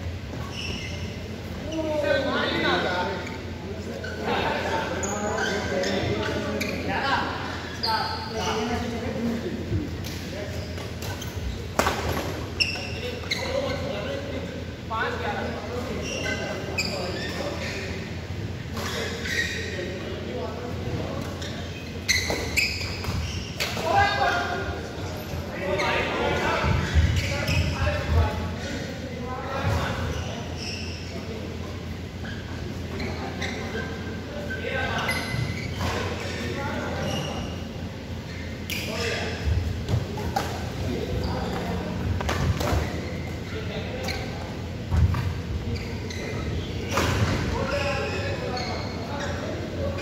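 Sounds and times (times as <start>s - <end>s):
shoe squeaking on floor: 0.0s - 9.4s, 10.0s - 14.2s, 15.0s - 50.0s
people talking: 0.4s - 21.7s, 23.1s - 31.9s, 32.7s - 50.0s.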